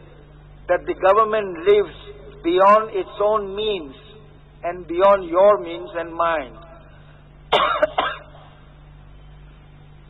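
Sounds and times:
faint steady hum: 0.0s - 10.0s
man coughing: 7.5s - 8.6s.

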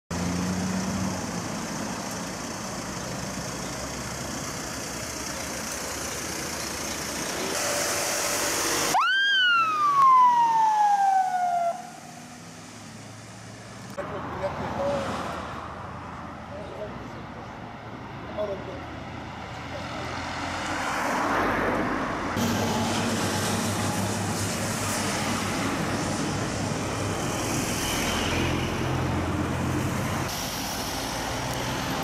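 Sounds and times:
road and engine noise: 0.1s - 32.0s
ambulance siren whoop: 8.9s - 12.1s.

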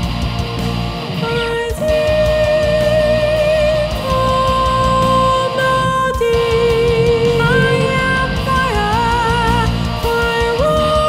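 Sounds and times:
distorted guitars: 0.0s - 11.0s
drums: 0.0s - 11.0s
lead guitar melody with vibrato: 0.0s - 11.0s.

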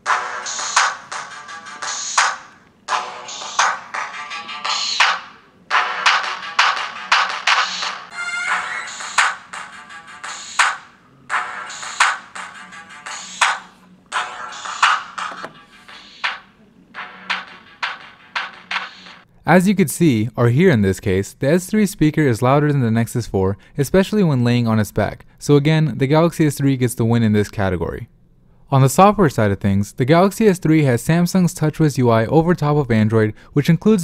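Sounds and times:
song from phone loudspeaker: 0.0s - 19.2s.

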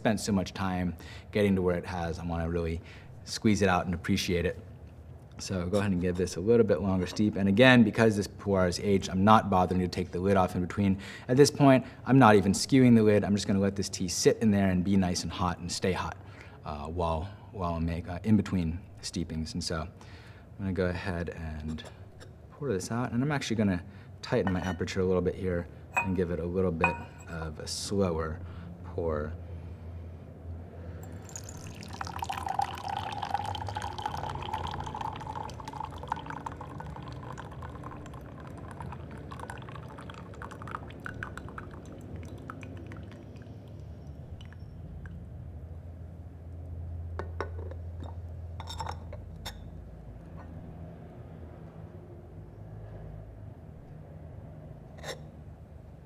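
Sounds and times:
teaware clinking: 24.4s - 24.9s, 26.0s - 27.4s, 31.0s - 45.2s, 47.2s - 49.7s
tea pouring into glass: 31.0s - 44.7s.

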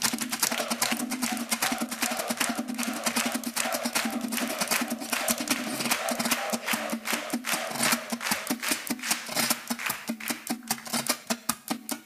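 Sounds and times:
fast rhythmic string strumming: 0.0s - 12.0s.

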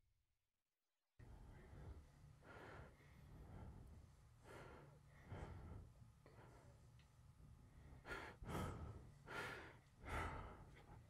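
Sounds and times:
heavy breathing: 1.4s - 6.8s, 7.7s - 11.0s.

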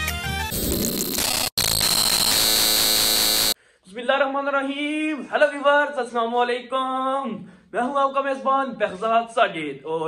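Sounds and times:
music: 0.0s - 0.6s
harsh static noise with tone: 0.4s - 3.6s.

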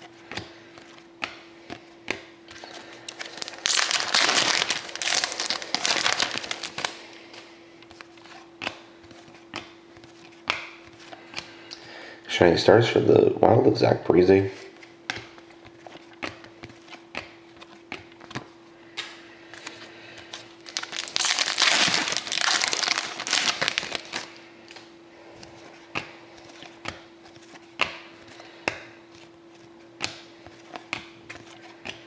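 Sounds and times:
faint steady hum: 0.0s - 32.0s
plastic wrapper crinkling and tearing: 3.1s - 7.0s, 20.6s - 24.4s.

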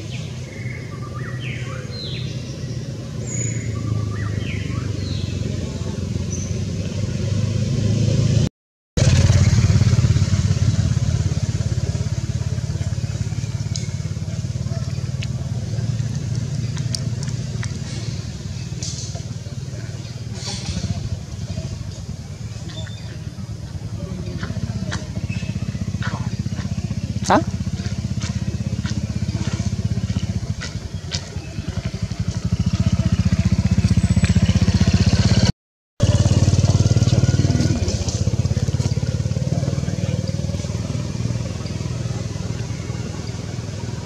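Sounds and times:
low motor rumble: 9.0s - 44.0s.

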